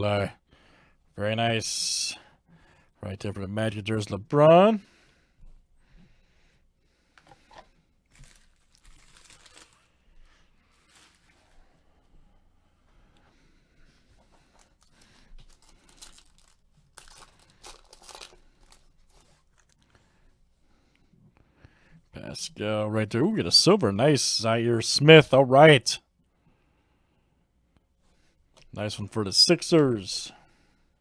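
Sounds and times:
foil wrapper crinkling and tearing: 8.1 - 11.6, 14.6 - 19.9.

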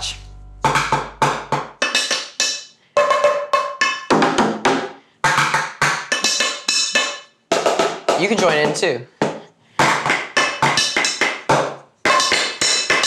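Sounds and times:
drumming on household containers: 0.0 - 13.0.

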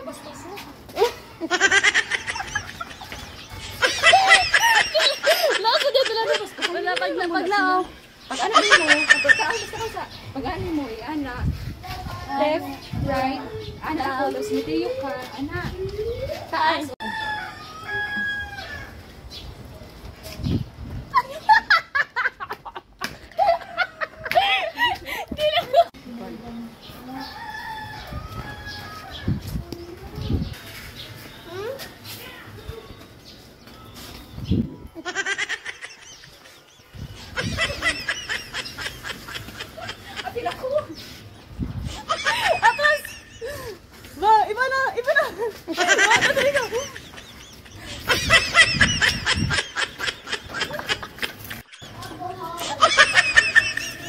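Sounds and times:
girls laughing: 1.0 - 10.1, 21.1 - 26.0, 35.0 - 41.1, 41.8 - 54.0
rooster crowing: 17.0 - 19.0, 27.1 - 29.3.

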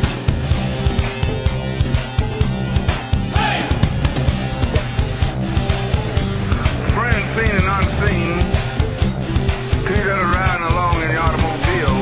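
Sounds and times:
rock music with drums and bass: 0.0 - 12.0.

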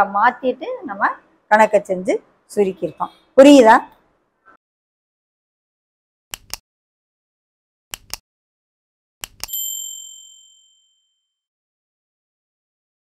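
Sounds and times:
double mouse clicks: 6.3 - 6.6, 7.9 - 8.2, 9.2 - 9.5
bright bell ding: 9.5 - 11.2.

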